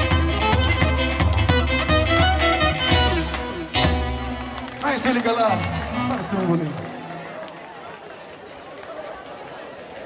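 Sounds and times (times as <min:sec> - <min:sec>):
live band note: 0:00.0 - 0:06.4
crowd chatter: 0:00.0 - 0:10.0.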